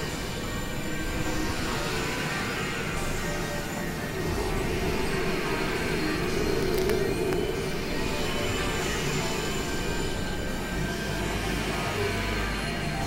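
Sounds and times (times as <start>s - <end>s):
experimental electronic drone: 0.0s - 13.0s
faint steady tones: 0.0s - 13.0s.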